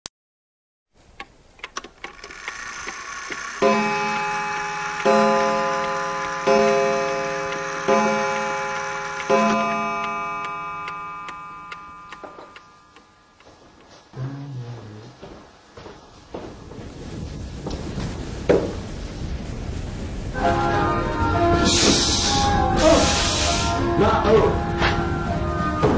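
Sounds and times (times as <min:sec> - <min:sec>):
clock ticking: 0:01.2 - 0:14.0
clock striking: 0:02.0 - 0:13.9.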